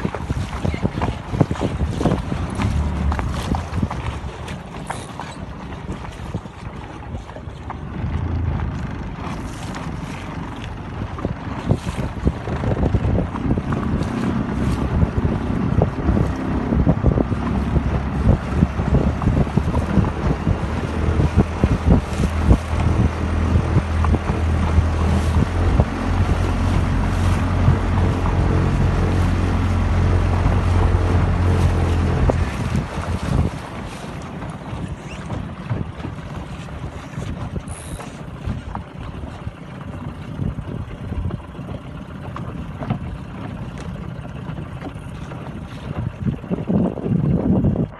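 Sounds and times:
boat motor running: 0:00.0 - 0:47.9
wind buffeting microphone: 0:00.0 - 0:47.9.

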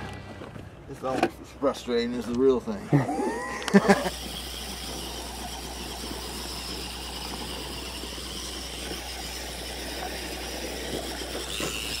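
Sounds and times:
toy car motor whining: 0:03.1 - 0:12.0.

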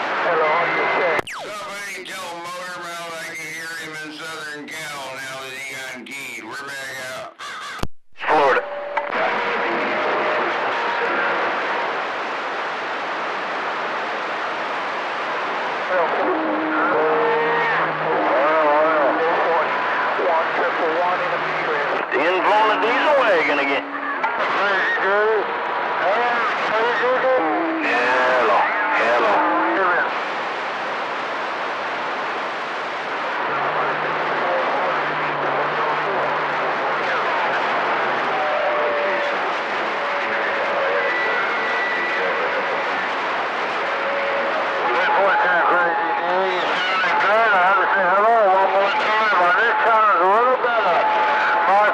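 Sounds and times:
faint garbled radio voices: 0:00.0 - 0:51.9
radio static hiss: 0:00.0 - 0:51.9.

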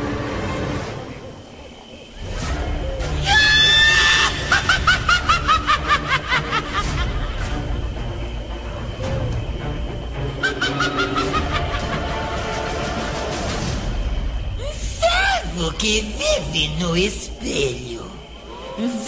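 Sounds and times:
dark low background music: 0:00.0 - 0:14.7
high-pitched cackling laugh: 0:04.2 - 0:07.5, 0:10.4 - 0:12.4.

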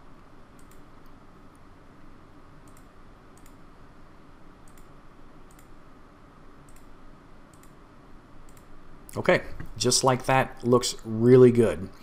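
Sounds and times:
faint room hiss: 0:00.0 - 0:12.0
computer mouse clicking: 0:00.5 - 0:01.6, 0:02.6 - 0:03.6, 0:04.6 - 0:05.8, 0:06.6 - 0:06.9, 0:07.5 - 0:07.8, 0:08.4 - 0:08.7.

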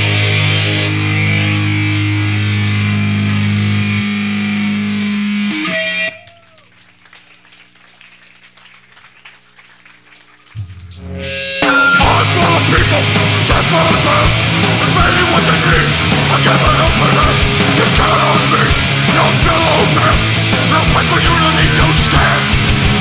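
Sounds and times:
band playing distorted guitars: 0:00.0 - 0:06.4, 0:10.7 - 0:23.0
low hum: 0:10.2 - 0:16.0.

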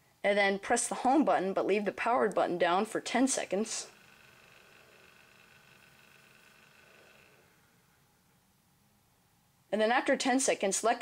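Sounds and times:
faint high whine: 0:02.2 - 0:09.8.

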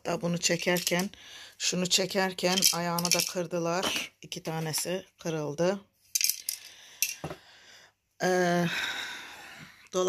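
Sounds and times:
clicks of small hard objects: 0:00.6 - 0:01.1, 0:02.5 - 0:03.4, 0:06.1 - 0:07.2.

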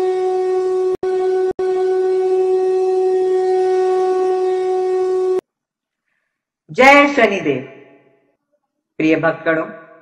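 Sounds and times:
conch shell blown: 0:00.0 - 0:05.5.

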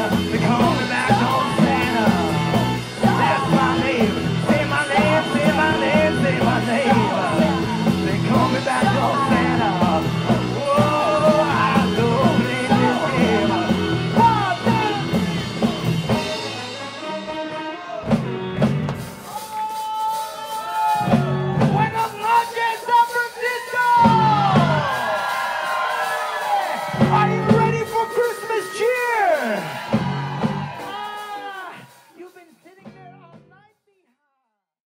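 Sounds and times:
person singing: 0:00.0 - 0:18.2
rock band playing: 0:00.0 - 0:33.6.

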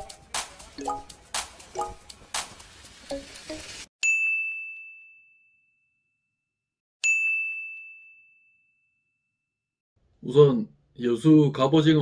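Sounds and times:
bell-like ding: 0:04.0 - 0:06.4, 0:07.0 - 0:09.4.

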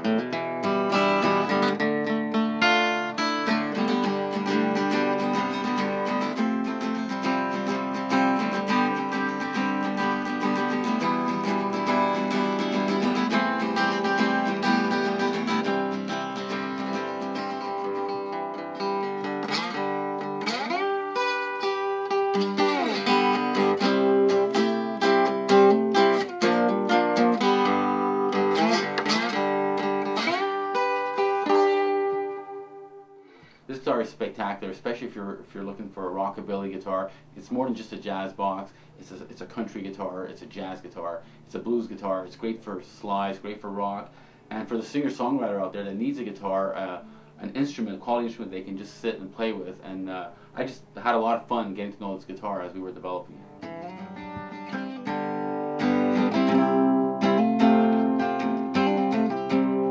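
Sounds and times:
slide guitar notes gliding: 0:00.0 - 0:33.4, 0:52.4 - 0:59.9
acoustic guitar playing: 0:00.0 - 0:59.9.

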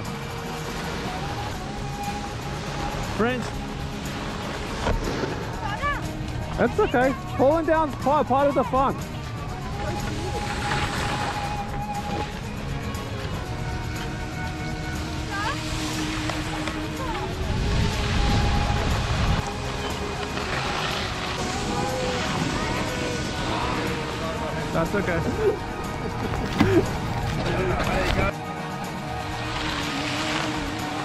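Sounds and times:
background music with held notes: 0:00.0 - 0:31.0
skis sliding on snow: 0:02.6 - 0:08.2, 0:09.6 - 0:12.4, 0:15.2 - 0:28.3, 0:29.1 - 0:31.0
wind hiss: 0:08.9 - 0:31.0
wind rumble on microphone: 0:14.5 - 0:28.3.

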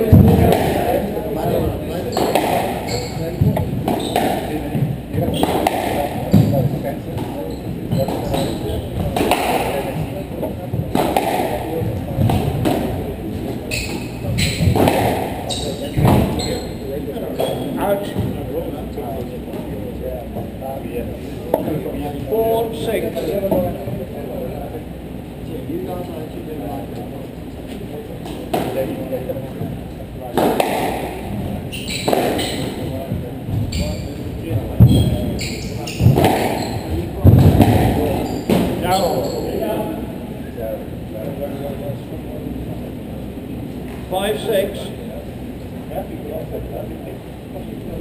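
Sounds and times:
squash ball hitting rackets and walls: 0:00.0 - 0:18.4, 0:30.3 - 0:33.9, 0:34.6 - 0:39.5.

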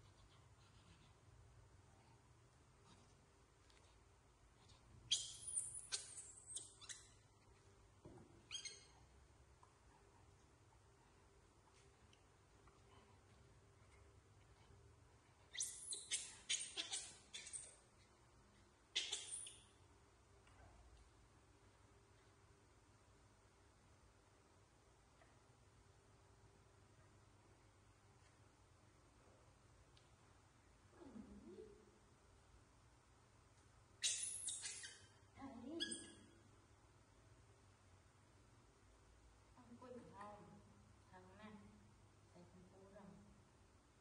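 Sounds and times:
baby macaque squealing: 0:05.1 - 0:07.3, 0:08.5 - 0:09.0, 0:15.5 - 0:17.8, 0:18.9 - 0:19.6, 0:34.0 - 0:35.1, 0:35.8 - 0:36.2
baby macaque calls: 0:15.6 - 0:17.6, 0:18.9 - 0:19.6, 0:35.8 - 0:36.2.

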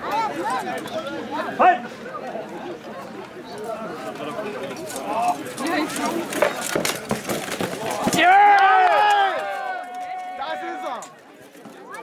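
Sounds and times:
spectators chatting: 0:00.0 - 0:12.0
loud shout: 0:08.1 - 0:11.0.

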